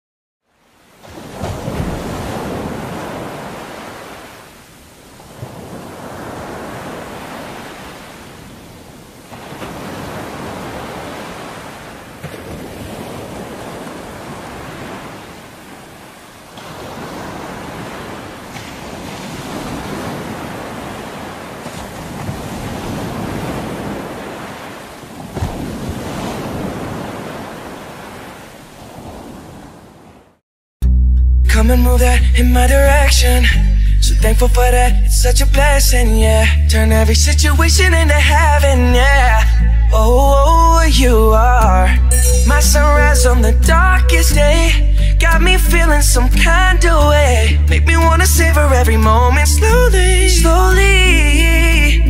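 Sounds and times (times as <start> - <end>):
ocean surf breaking over rocks: 0.7 - 30.4.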